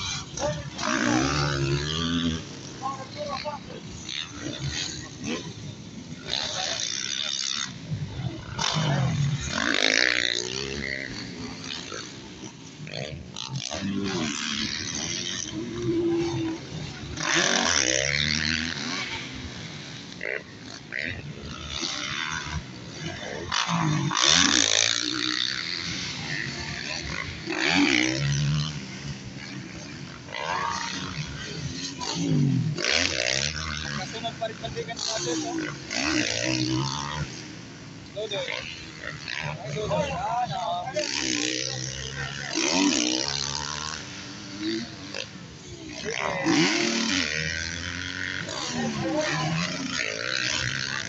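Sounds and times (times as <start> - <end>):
dirt bike engines revving: 0.0 - 51.0.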